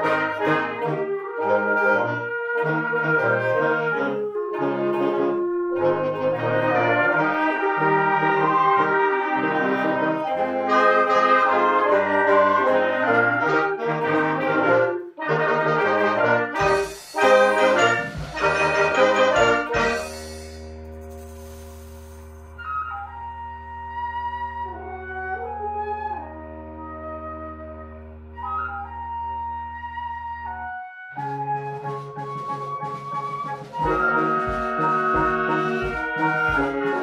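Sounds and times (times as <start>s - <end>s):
concert band playing: 2.6s - 21.6s, 32.0s - 37.0s.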